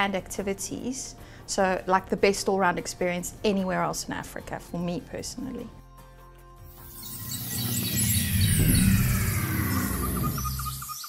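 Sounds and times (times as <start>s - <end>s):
bird-like chirps: 6.7s - 11.0s
high tone sweeping downward: 6.7s - 11.0s
low rumble: 7.1s - 10.8s.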